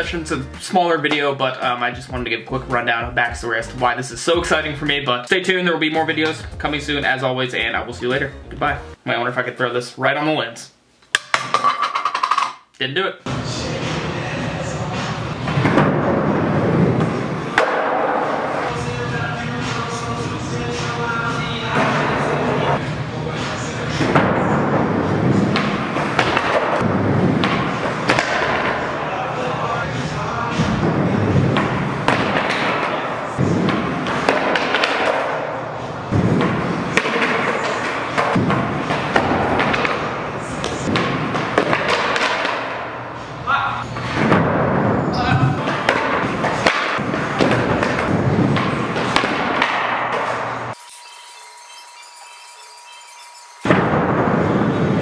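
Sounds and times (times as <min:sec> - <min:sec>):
music with vocals: 0:00.0 - 0:05.3, 0:13.3 - 0:15.8, 0:18.7 - 0:25.8, 0:27.6 - 0:33.7.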